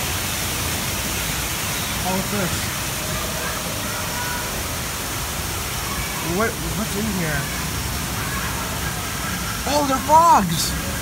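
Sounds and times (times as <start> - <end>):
faint distant voices: 1.9 - 11.0.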